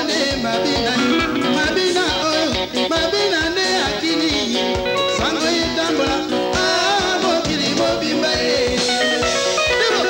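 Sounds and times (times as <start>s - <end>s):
bass guitar: 0.0s - 10.0s
drum kit with kick drum: 0.0s - 10.0s
electric guitar lines: 0.0s - 10.0s
voices singing: 0.0s - 10.0s.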